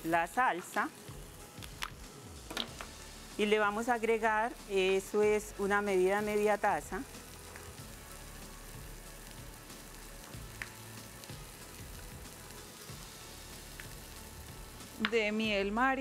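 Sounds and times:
meat sizzling in a frying pan: 0.0s - 16.0s.

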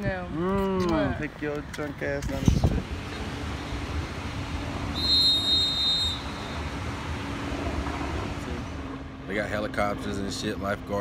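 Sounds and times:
steady low hum: 2.5s - 11.0s
long whistle blast: 4.9s - 6.8s.

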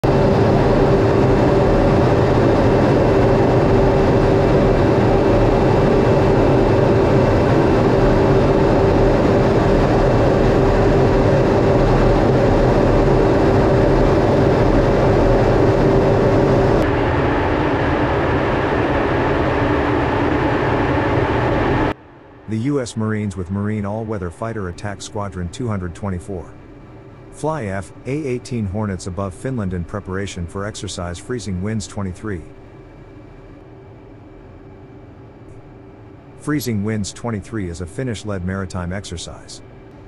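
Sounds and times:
jet engine and airflow rumble: 0.0s - 40.0s
mid-pitched hum: 0.0s - 40.0s.

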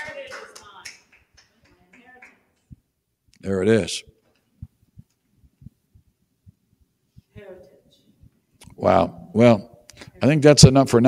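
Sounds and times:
light hand clapping: 0.0s - 2.8s.

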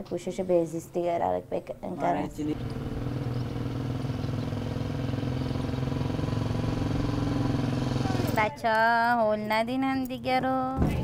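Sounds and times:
small motorcycle engine: 2.2s - 8.4s.

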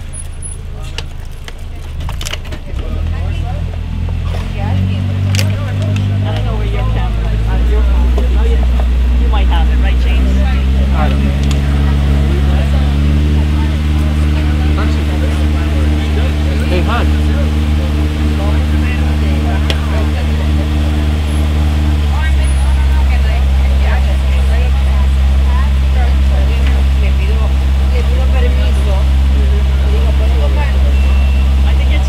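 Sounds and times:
background voices: 0.0s - 32.0s
large vehicle engine under load: 0.0s - 32.0s.

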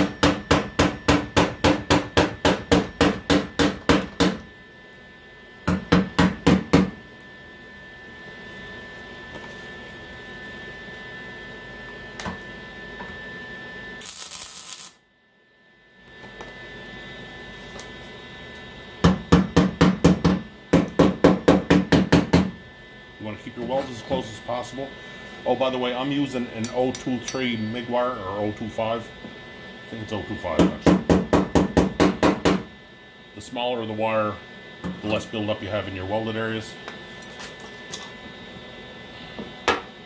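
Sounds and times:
steady low hum: 0.0s - 40.0s.

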